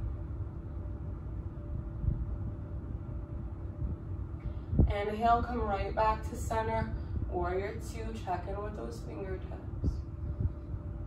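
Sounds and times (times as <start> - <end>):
faint hum: 0.0 - 11.0
low background rumble: 0.0 - 11.0.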